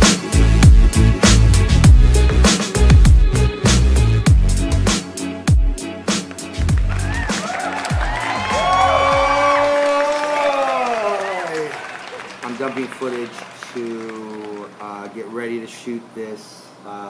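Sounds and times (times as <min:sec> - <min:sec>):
music with deep kick drum: 0:00.0 - 0:07.2.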